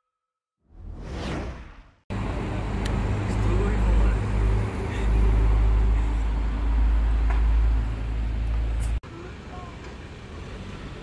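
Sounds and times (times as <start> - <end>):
whoosh sound effect: 0.7 - 2.0
road traffic rumble: 2.1 - 11.0.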